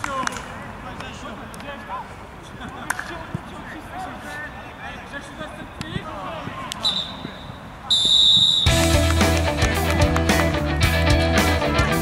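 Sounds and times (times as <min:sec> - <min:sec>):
referee's whistle blast: 0:06.8 - 0:08.8
loud rock music: 0:08.7 - 0:12.0.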